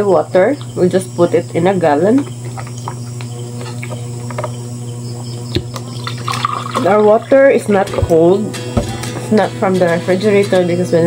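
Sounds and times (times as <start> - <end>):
steady low hum: 0.0 - 11.0
plastic jug knocking: 5.5 - 9.4.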